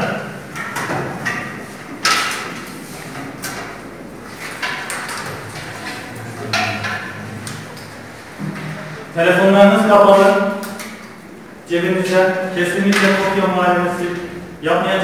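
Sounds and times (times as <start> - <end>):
students shifting at desks: 0.0 - 14.6.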